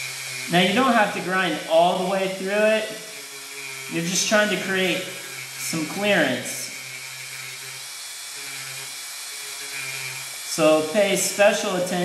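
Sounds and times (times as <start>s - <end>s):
rotary tool grinding: 0.0s - 12.0s.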